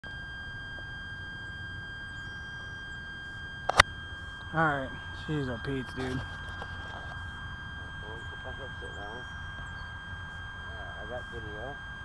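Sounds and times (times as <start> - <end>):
high-pitched electronic whine: 0.0 - 12.0
low background hum: 0.0 - 12.0
camera handling clicks: 3.7 - 3.9.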